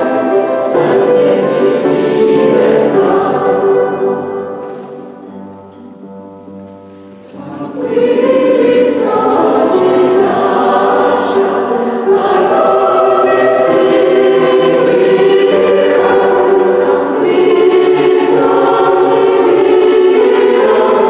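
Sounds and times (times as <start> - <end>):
mixed choir singing: 0.0 - 5.2, 7.1 - 21.0.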